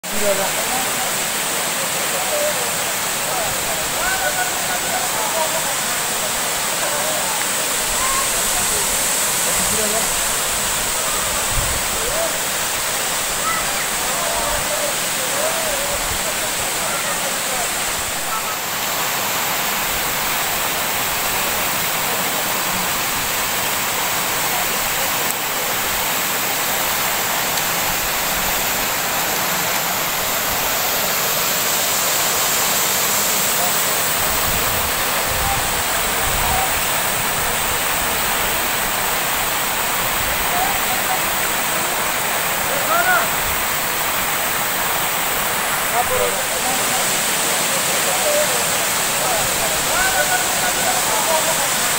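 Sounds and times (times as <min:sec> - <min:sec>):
waterfall rushing: 0:00.0 - 0:51.9.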